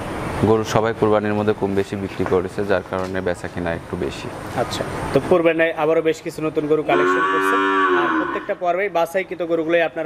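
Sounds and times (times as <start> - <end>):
calf mooing: 6.9 - 8.6.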